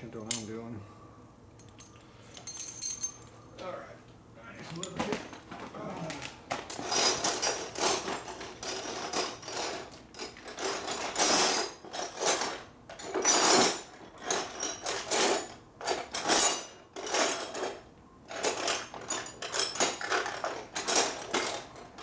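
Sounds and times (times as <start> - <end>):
metal hand tools clinking: 0.2 - 0.5, 1.6 - 3.4, 6.7 - 22.0.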